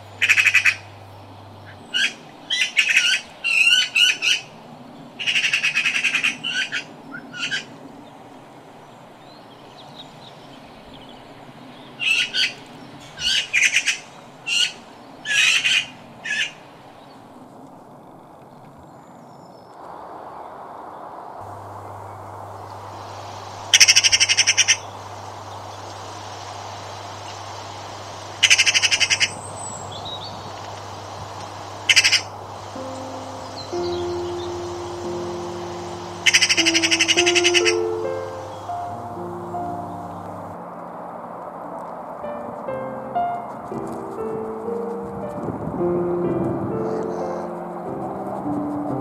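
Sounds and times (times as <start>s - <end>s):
low hum: 0.0s - 2.5s, 21.4s - 46.7s
magpie harsh calls: 0.2s - 0.9s, 5.2s - 7.7s, 12.0s - 16.6s, 23.7s - 24.9s, 28.2s - 39.5s
magpie rattling chatters: 0.2s - 0.9s, 23.7s - 24.9s, 28.3s - 32.3s, 35.8s - 38.7s
soft music with held notes: 30.4s - 49.0s.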